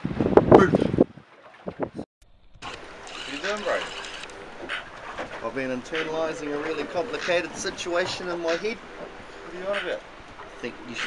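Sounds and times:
wind and water hiss around boat: 0:02.6 - 0:11.0.

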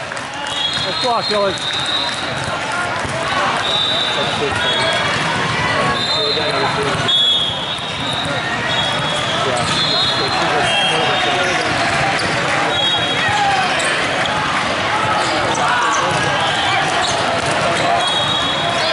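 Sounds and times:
many voices talking: 0:00.0 - 0:18.9
volleyballs hit and bouncing: 0:00.0 - 0:18.9
sneaker squeaks on court floor: 0:03.6 - 0:14.4, 0:15.0 - 0:18.9.

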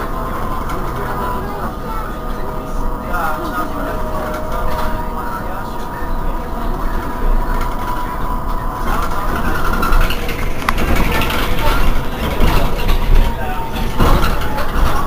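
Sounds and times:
electric trolleybus humming: 0:00.0 - 0:15.0
low street noise rumble: 0:00.0 - 0:15.0.

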